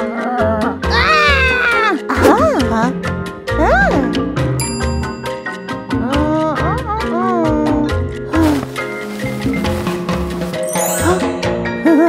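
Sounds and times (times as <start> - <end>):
background music: 0.0 - 12.0
whiny cartoon voice crying: 0.9 - 2.0.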